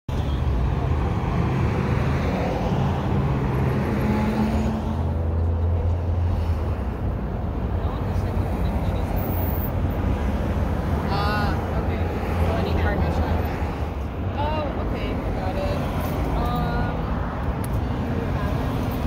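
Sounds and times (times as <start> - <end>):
cars on busy road: 0.1 - 19.0.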